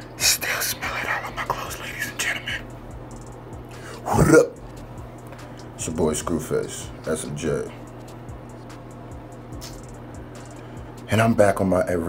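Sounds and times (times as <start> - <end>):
beatboxing hisses and clicks: 9.6 - 10.6.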